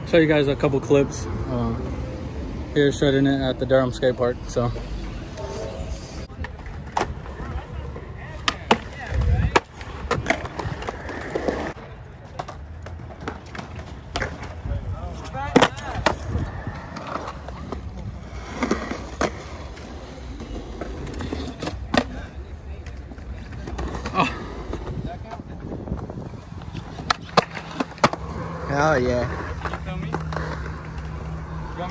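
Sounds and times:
skateboard wheels rolling on concrete: 0.0s - 31.9s
skateboards clacking: 6.3s - 31.9s.

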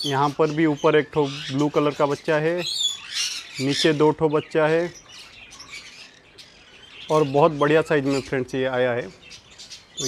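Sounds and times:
budgerigars chirping: 0.0s - 10.0s.

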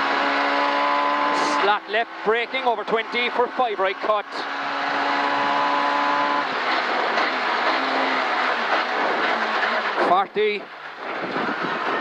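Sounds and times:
rally car engine: 0.0s - 12.0s
road and tyre noise: 0.0s - 12.0s.

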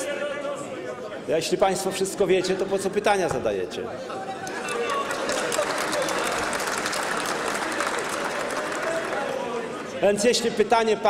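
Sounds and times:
crowd talking and calling out: 3.8s - 10.6s
people clapping: 4.4s - 10.0s.

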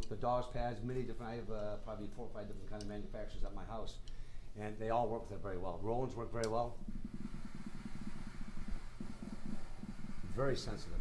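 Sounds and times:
fingertips on rubber drum pad: 6.4s - 11.0s.

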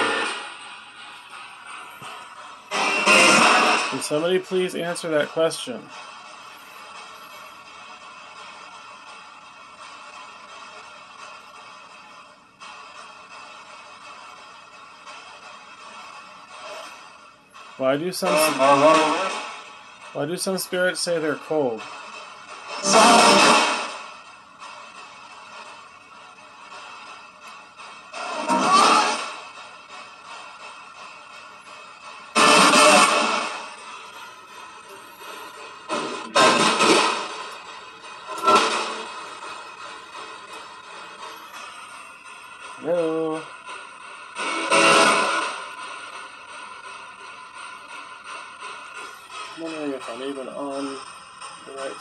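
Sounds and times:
radio static hiss: 1.7s - 5.9s, 17.8s - 19.6s, 22.6s - 24.0s, 32.4s - 34.3s, 35.0s - 41.8s
bursts of radio noise: 2.7s - 5.3s, 22.8s - 23.9s, 32.4s - 33.6s
snatch of broadcast voice: 2.7s - 5.8s, 22.8s - 23.7s.

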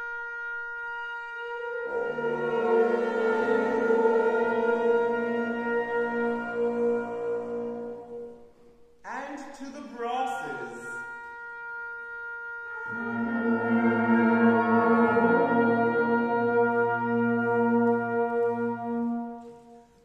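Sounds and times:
wind band holding a chord: 0.0s - 8.5s, 10.0s - 19.8s.

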